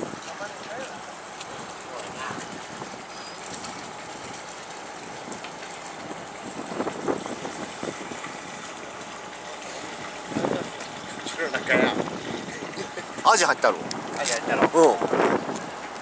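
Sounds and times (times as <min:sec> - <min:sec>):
boat engine running: 0:00.0 - 0:16.0
wind and sea: 0:00.0 - 0:16.0.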